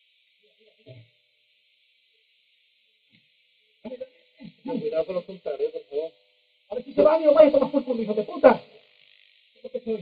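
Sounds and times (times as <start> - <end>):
man speaking: 3.9 - 8.7.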